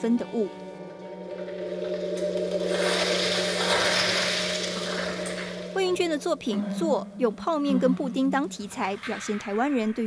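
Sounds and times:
low drone: 0.5 - 10.0.

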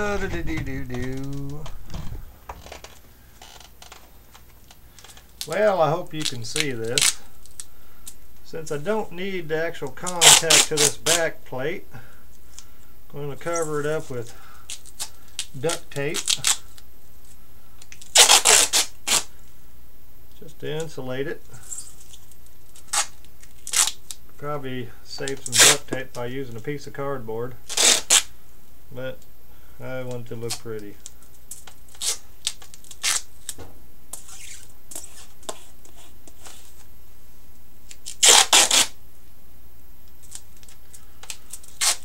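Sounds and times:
duct tape crackling clicks: 0.0 - 5.6
low background hum: 0.0 - 42.0
hands rubbing tape over foil: 17.9 - 19.3, 27.7 - 28.3, 31.5 - 36.9, 38.0 - 38.9, 40.2 - 42.0.

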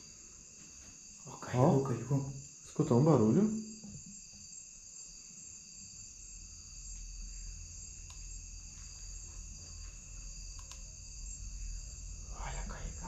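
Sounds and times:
crickets and insects trilling: 0.0 - 13.0
low rumble: 7.1 - 13.0
faint ticks: 7.9 - 10.9.

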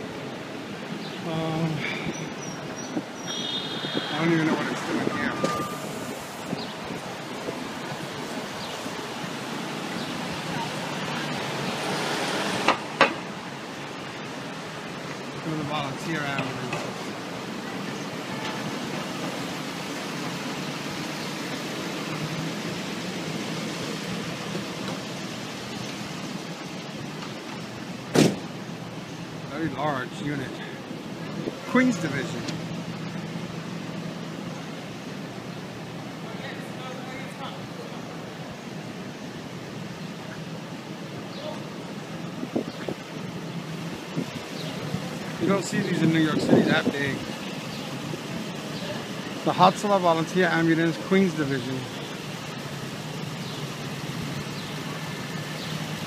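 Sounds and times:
city street traffic: 0.0 - 56.0
vehicle engine rumbling: 0.0 - 56.0.

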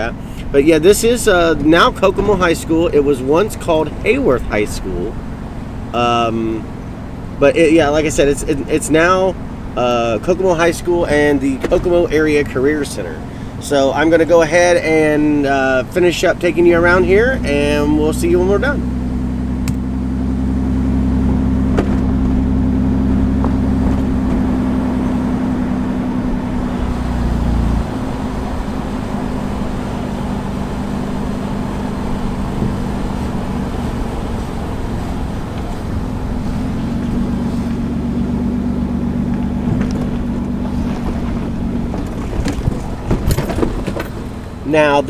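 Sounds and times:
car engine running: 0.0 - 45.0
road noise inside car: 0.0 - 45.0.

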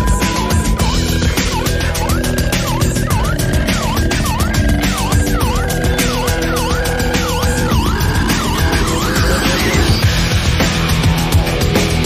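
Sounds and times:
siren-like synth wail: 0.0 - 10.2
loud electronic music: 0.0 - 12.0.

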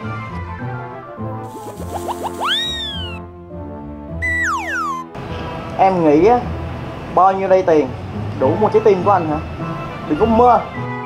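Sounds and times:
background music: 0.0 - 11.0
quick rising chirps: 1.5 - 3.2, 4.2 - 5.2
cartoon whistle glide: 1.8 - 3.2, 4.2 - 5.2.

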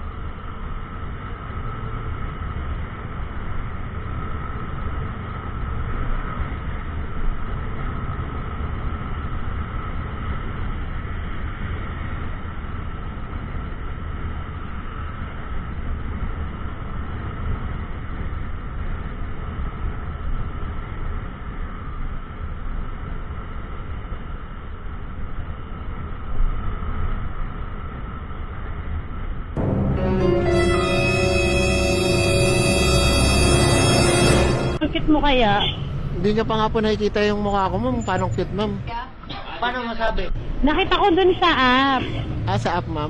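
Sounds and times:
motorcycle road noise: 0.0 - 29.4.

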